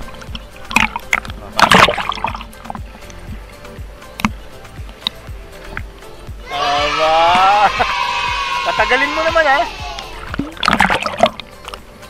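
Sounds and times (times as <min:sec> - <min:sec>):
sea water splashing against camera: 0:00.0 - 0:06.2, 0:09.1 - 0:12.0
background music: 0:00.0 - 0:12.0.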